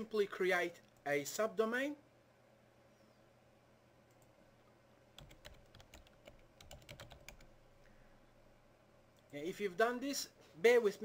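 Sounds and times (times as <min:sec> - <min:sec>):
low steady hum: 0:00.0 - 0:11.0
computer keyboard typing: 0:05.2 - 0:07.6.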